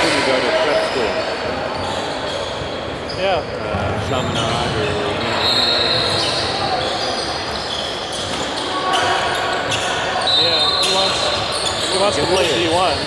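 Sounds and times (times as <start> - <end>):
voices in a gym: 0.0 - 13.0
high squeak: 5.2 - 13.0.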